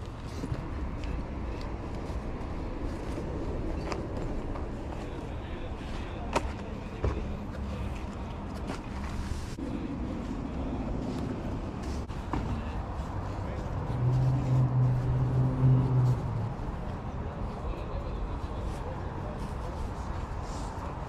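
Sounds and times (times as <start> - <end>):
distant voices: 0.0 - 21.0.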